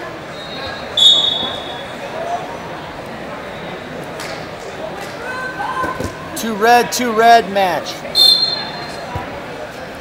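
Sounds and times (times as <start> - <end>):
referee's whistle blowing: 0.3 - 2.0, 8.1 - 8.9.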